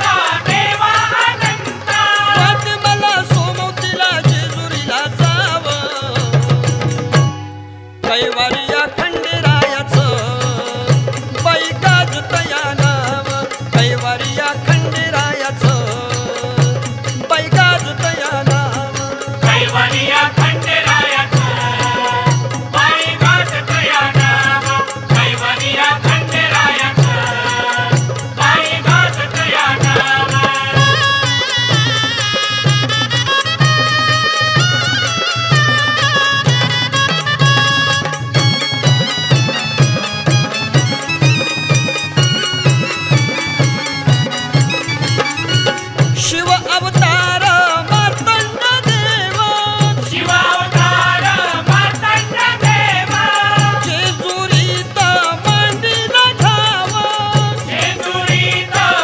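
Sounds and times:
steady drum beat: 0:00.0 - 0:07.4, 0:08.2 - 0:59.0
person singing devotional song: 0:00.0 - 0:59.0
rattling percussion: 0:00.0 - 0:59.0.

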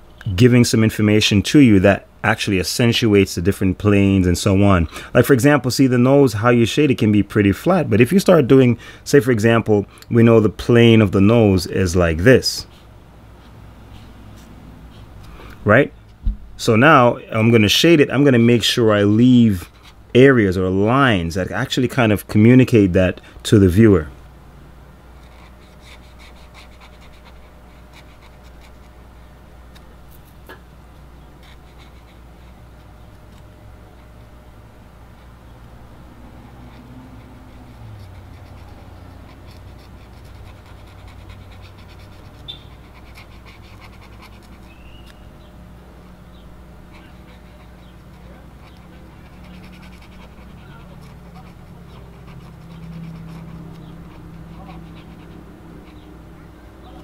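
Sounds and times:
steady low hum: 0:00.0 - 0:57.0
marker scratching on paper: 0:19.6 - 0:20.0, 0:25.2 - 0:29.0, 0:31.4 - 0:34.3, 0:36.2 - 0:45.2, 0:46.3 - 0:57.0.

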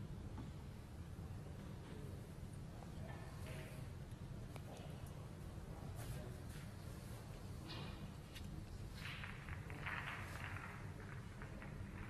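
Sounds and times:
low steady room hum: 0:00.0 - 0:12.0
balls rolling on cloth: 0:08.8 - 0:12.0.

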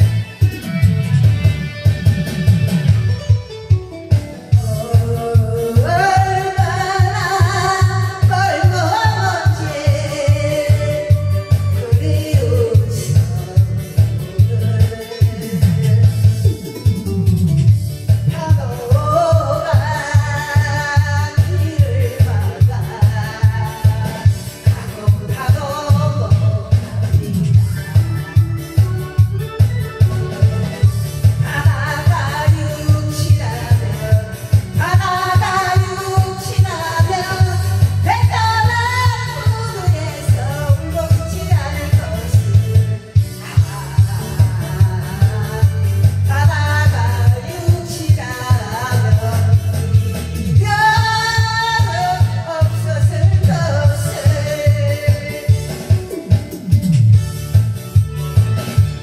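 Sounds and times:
karaoke backing track with bass beat: 0:00.0 - 0:59.0
woman singing into microphone: 0:04.0 - 0:56.8.

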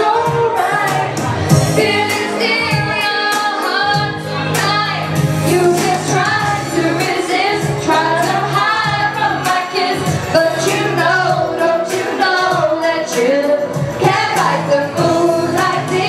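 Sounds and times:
instrumental accompaniment with beat: 0:00.0 - 0:16.0
woman singing pop song: 0:00.0 - 0:16.0.

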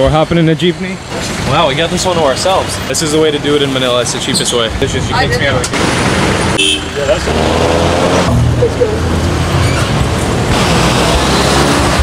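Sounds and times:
engine and road noise: 0:00.0 - 0:12.0.

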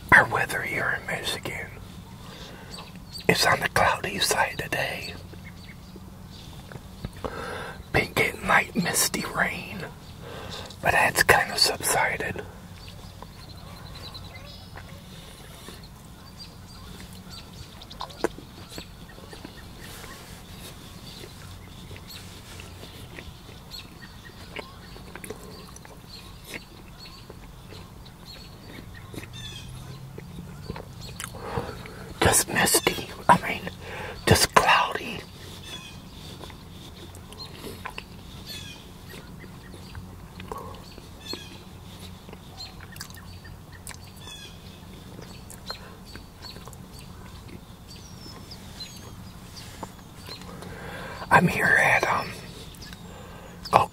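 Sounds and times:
birds chirping: 0:00.0 - 0:53.9
steady low hum: 0:00.0 - 0:53.9
chewing and wet mouth clicks: 0:16.8 - 0:20.2, 0:21.1 - 0:32.0, 0:36.2 - 0:38.4, 0:39.0 - 0:44.2, 0:44.9 - 0:48.6, 0:52.6 - 0:53.1.

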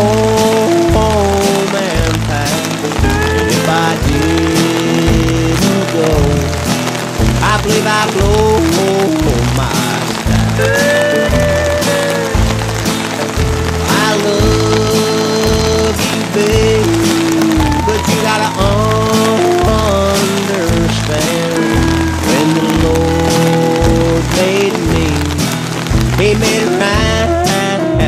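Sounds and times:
song with beat and singing: 0:00.0 - 0:28.0.

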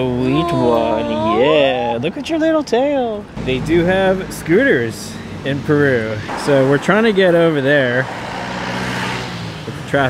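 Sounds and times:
car passing: 0:03.0 - 0:10.0.

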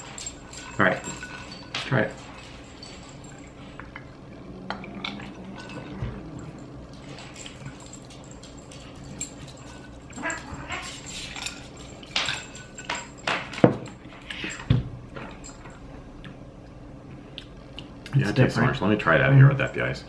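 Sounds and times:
people sipping and swallowing: 0:03.8 - 0:07.0.

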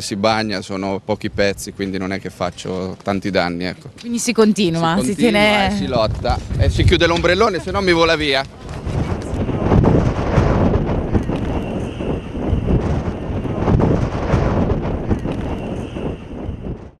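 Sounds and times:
gusty wind buffeting microphone: 0:00.4 - 0:02.8, 0:04.2 - 0:17.0.

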